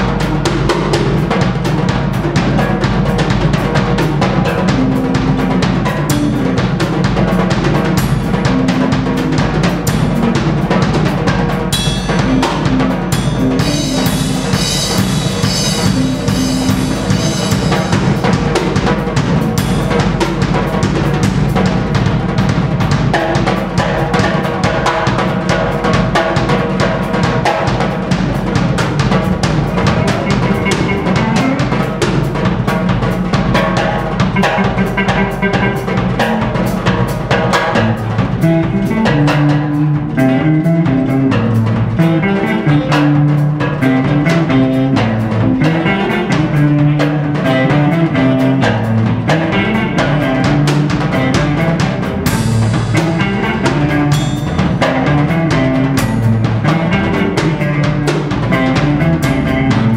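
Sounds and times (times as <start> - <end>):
band instruments: 0.0 - 59.9
drum kit played hard: 0.0 - 59.9.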